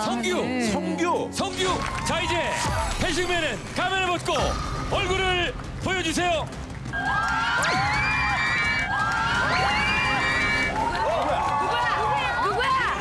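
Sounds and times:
audience screaming and cheering: 1.5 - 3.0, 6.4 - 13.0.

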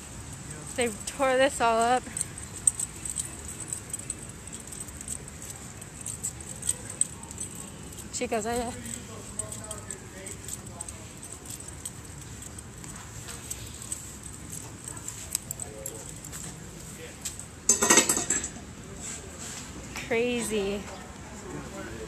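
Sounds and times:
burst of jangling clinks: 0.0 - 18.5
light clicks and clinks: 0.0 - 18.6.

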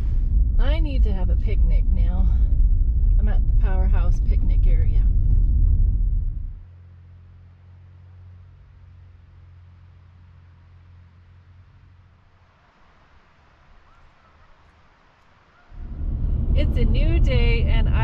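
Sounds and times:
car road rumble: 0.0 - 18.0
faint low hum: 0.0 - 18.0.

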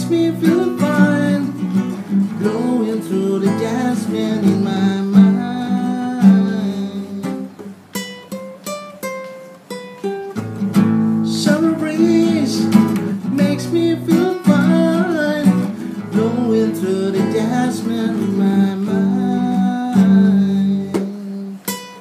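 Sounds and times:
acoustic guitar plucked notes: 0.0 - 22.0
acoustic guitar strummed chords: 0.0 - 22.0.

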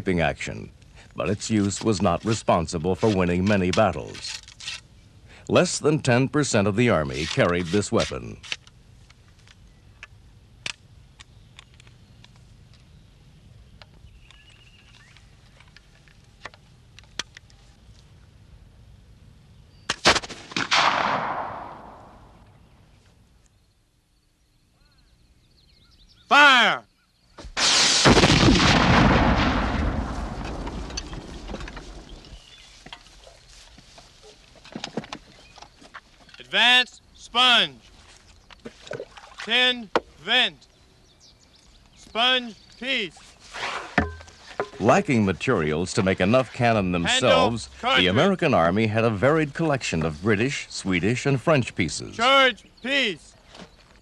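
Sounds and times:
cannon boom: 20.0 - 22.4, 27.5 - 32.3.

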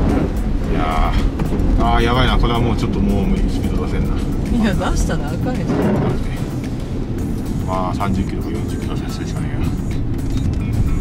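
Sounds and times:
in-cabin road noise: 0.0 - 11.0.

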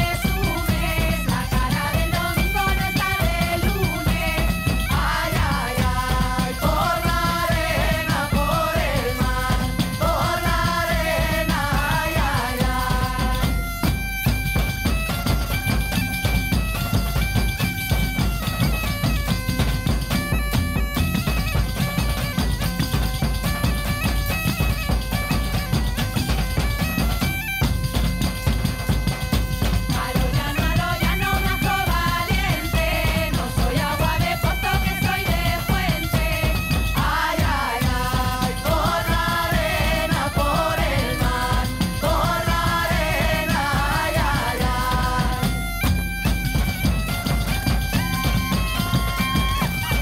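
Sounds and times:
people singing: 0.0 - 13.7, 29.7 - 45.8
bagpipe melody: 0.0 - 50.0
frame drums beating: 0.0 - 50.0.

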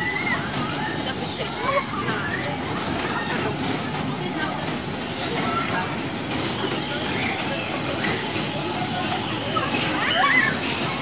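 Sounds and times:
amusement ride rumbling: 0.0 - 11.0
faint voices: 0.0 - 11.0.

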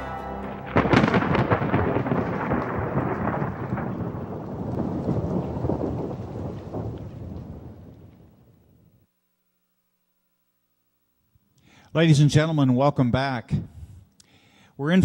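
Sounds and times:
thunderclap: 0.5 - 9.0
rolling crackling thunder: 0.6 - 9.0.

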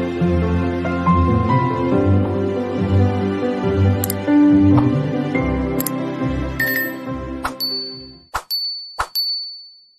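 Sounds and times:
high bell-like ding: 6.6 - 7.0, 7.6 - 9.9.

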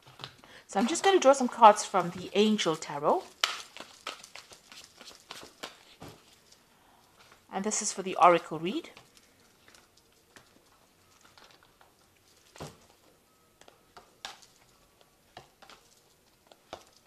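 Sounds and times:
cards clicking and rustling: 0.0 - 6.6.

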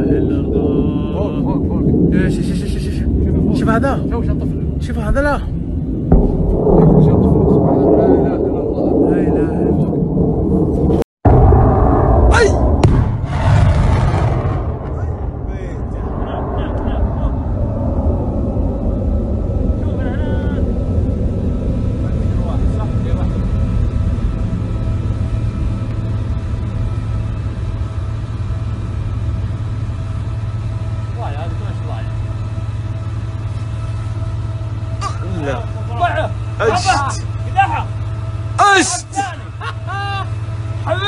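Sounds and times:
low rumble of missile launches: 0.0 - 35.7.

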